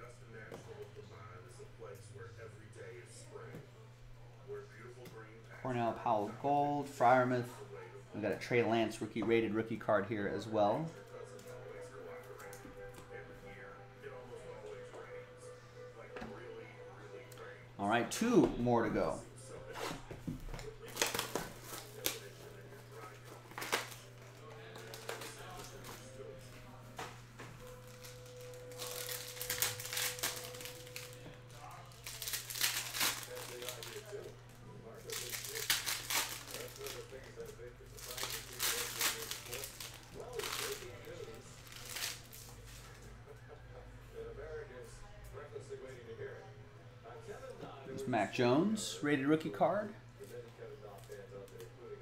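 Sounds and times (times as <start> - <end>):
card pack wrappers crinkling: 20.8 - 26.1, 27.6 - 42.9.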